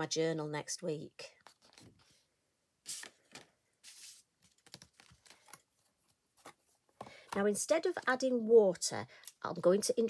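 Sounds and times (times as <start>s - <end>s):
card rustling: 1.4s - 2.2s, 2.9s - 7.4s.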